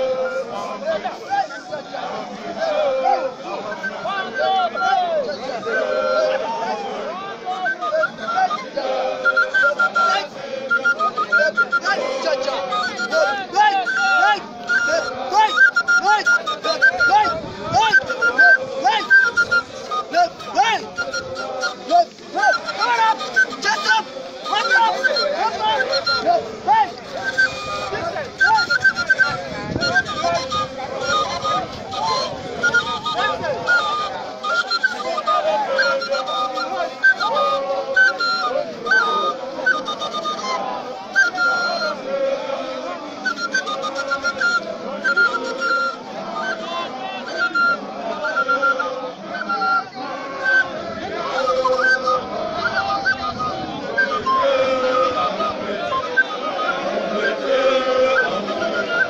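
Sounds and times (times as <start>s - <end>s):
group singing and chanting: 0.0s - 59.0s.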